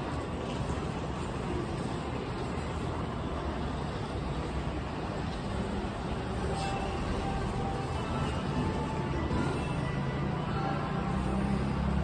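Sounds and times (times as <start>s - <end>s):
stopped train low rumble and hum: 0.0s - 12.0s.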